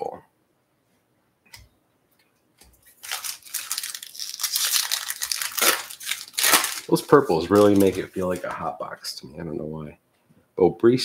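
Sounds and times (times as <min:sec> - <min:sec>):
foil wrapper tearing and crinkling: 0:02.8 - 0:08.6.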